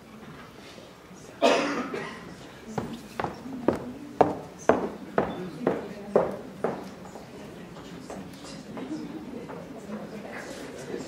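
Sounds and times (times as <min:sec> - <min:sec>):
person coughing: 0:01.4 - 0:02.3.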